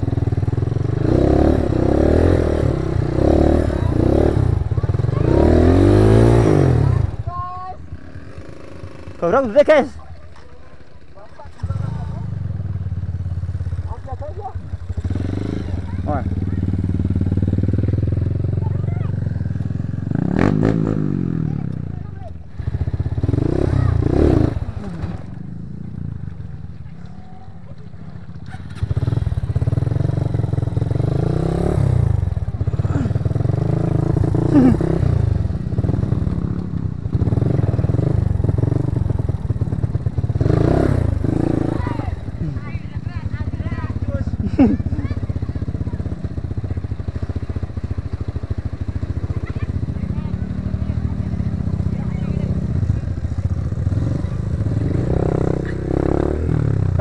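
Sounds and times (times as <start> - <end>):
dirt bike engine running: 0.0 - 57.0.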